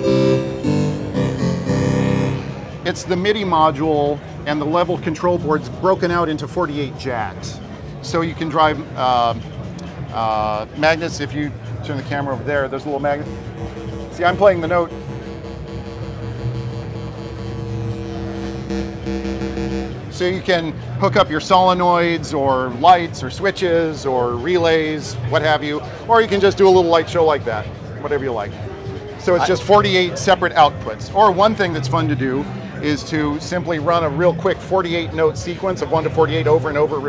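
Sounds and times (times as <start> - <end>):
organ-style synth chords: 0.0 - 3.4, 10.6 - 22.2.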